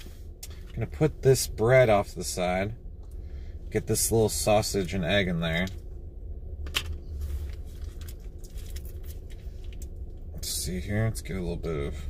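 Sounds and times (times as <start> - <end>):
car cabin rumble: 0.0 - 12.0
condiment packet crinkling: 7.5 - 9.9.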